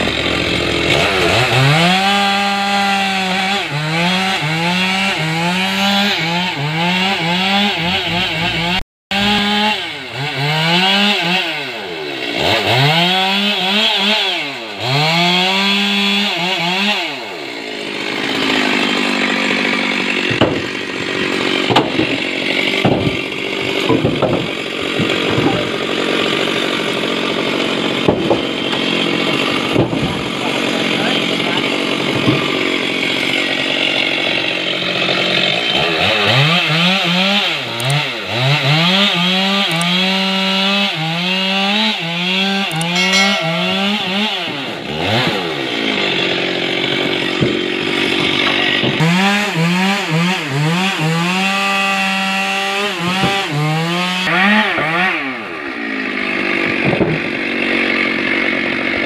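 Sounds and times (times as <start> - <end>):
chainsaw cutting logs: 0.0 - 59.0
wood knocking: 20.2 - 20.8, 21.6 - 22.2, 22.8 - 25.6, 28.1 - 28.8, 29.7 - 30.2, 32.2 - 32.5.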